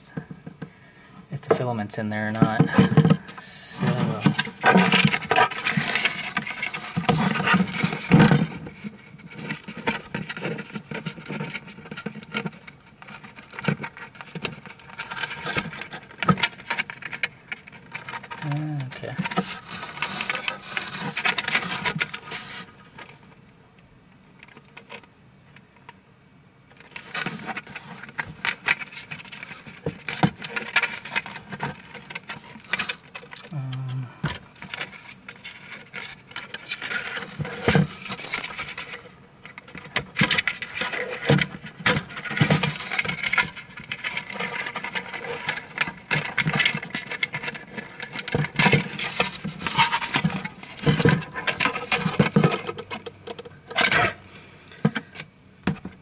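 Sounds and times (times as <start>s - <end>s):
plastic clicks and scrapes: 2.3s - 23.2s, 26.7s - 56.0s.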